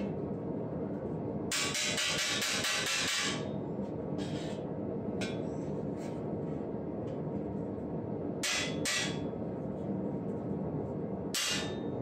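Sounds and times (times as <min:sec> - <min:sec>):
steady low rumble: 0:00.0 - 0:01.6, 0:03.4 - 0:08.5, 0:09.2 - 0:12.0
metal tool striking metal: 0:01.5 - 0:03.4, 0:08.4 - 0:09.2, 0:11.4 - 0:11.9.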